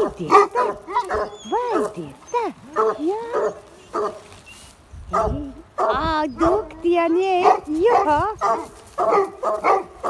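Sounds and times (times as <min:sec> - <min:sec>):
puppies yapping and yelping: 0:00.9 - 0:04.7.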